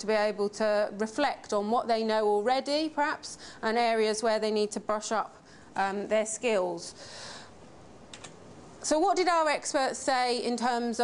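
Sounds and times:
woman speaking: 0.0 - 7.0, 8.8 - 11.0
soft keyboard clicks: 8.1 - 8.4.

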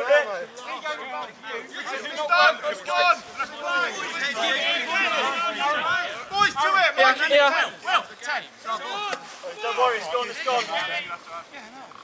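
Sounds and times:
men shouting and talking: 0.0 - 11.9.

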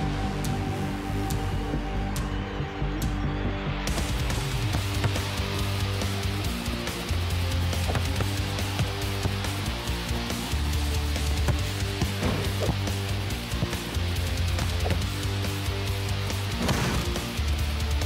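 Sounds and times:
upbeat rock music with guitar: 0.0 - 18.0.

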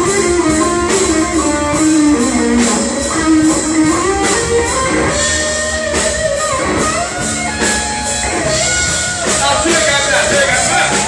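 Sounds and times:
drums and cymbals: 0.0 - 11.0
electric guitar bent notes: 0.0 - 11.0.

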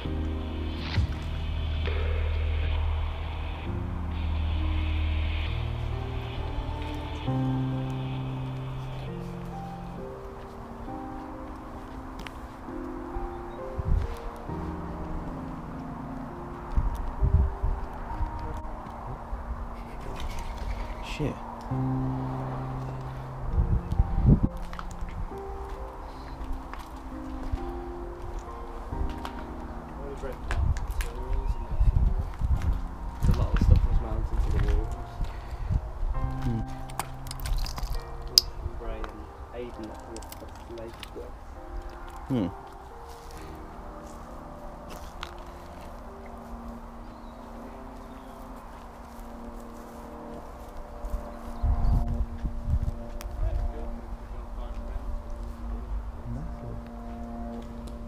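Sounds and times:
footsteps in long grass: 0.0 - 58.0
slow soft background music: 0.0 - 58.0
steady low rumble: 0.0 - 58.0.

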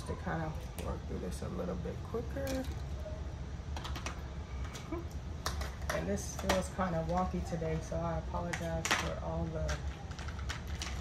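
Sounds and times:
low steady hum: 0.0 - 11.0
markers clattering in a cup: 3.8 - 4.2, 5.4 - 11.0.

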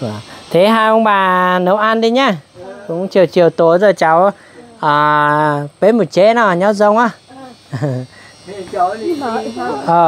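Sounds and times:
crickets droning: 0.0 - 10.0.

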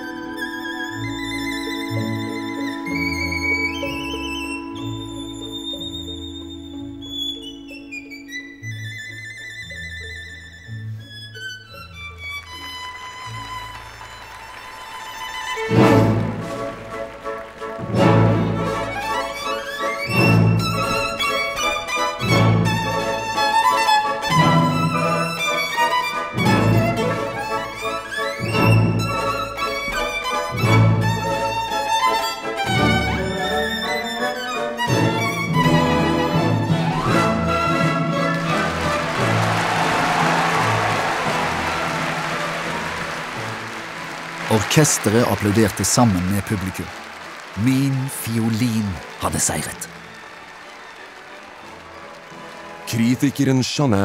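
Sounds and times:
violin playing fast runs: 0.0 - 49.2.

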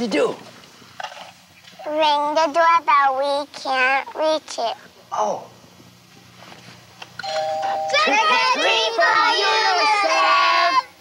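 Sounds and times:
doorbell chime: 7.2 - 8.1
children calling out together: 7.9 - 11.0.

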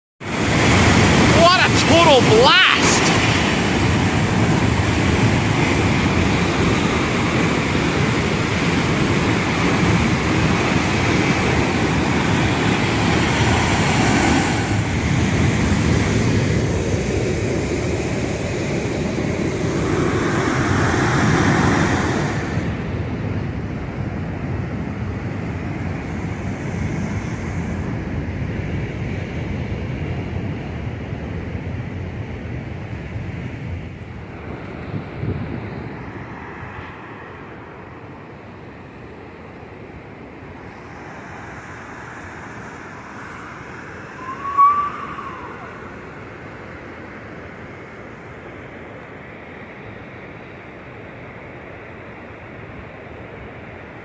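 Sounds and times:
wind on microphone: 0.2 - 37.3, 40.4 - 47.1
waterfall roaring: 0.3 - 15.8.

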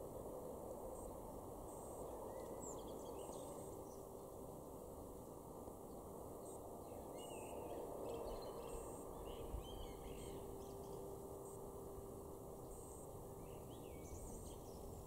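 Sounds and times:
blackbird singing: 6.9 - 11.6.

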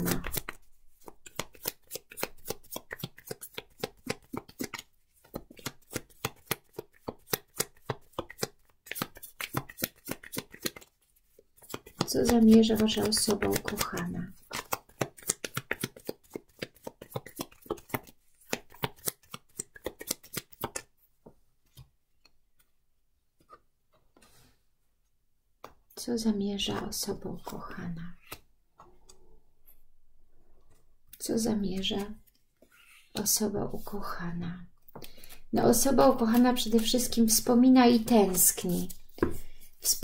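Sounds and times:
cards being shuffled: 0.0 - 20.9, 27.4 - 28.5, 34.9 - 40.0.

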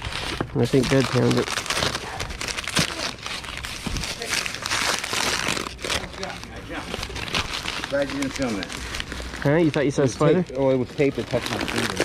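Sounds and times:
newspaper crinkling and rustling: 0.0 - 12.0.

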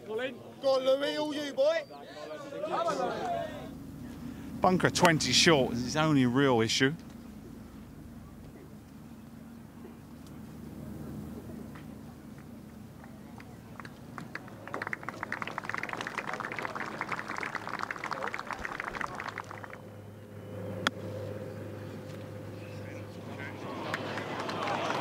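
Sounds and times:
spectators applauding: 13.4 - 19.8, 23.6 - 25.0.

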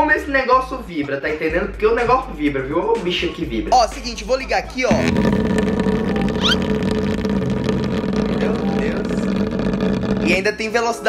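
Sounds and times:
vibration motor buzzing: 4.9 - 10.6.

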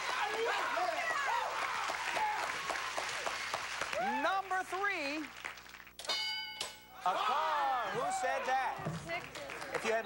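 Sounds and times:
studio audience applauding: 0.0 - 6.0, 7.7 - 10.0.

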